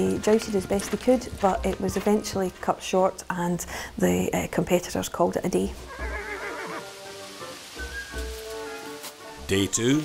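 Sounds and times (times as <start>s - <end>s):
background music with held notes: 5.7s - 10.0s
horse whinnying: 5.8s - 6.9s
steady rain: 5.8s - 10.0s.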